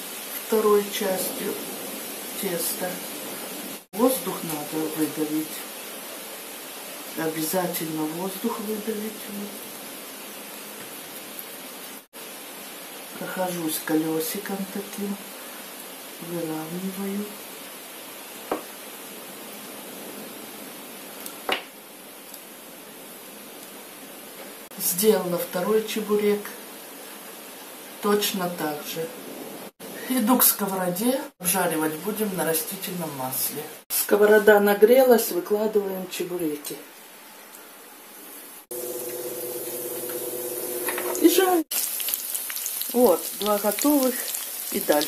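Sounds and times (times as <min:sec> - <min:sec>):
heavy rain hissing: 0:00.0 - 0:34.7, 0:35.3 - 0:45.0
knocks on a table: 0:18.5 - 0:18.7
food sizzling in hot oil: 0:38.2 - 0:45.0.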